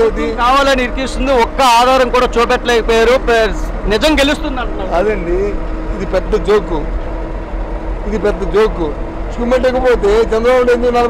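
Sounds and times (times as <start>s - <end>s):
man speaking: 0.0s - 6.9s, 8.1s - 11.0s
bus rumble: 0.0s - 11.0s.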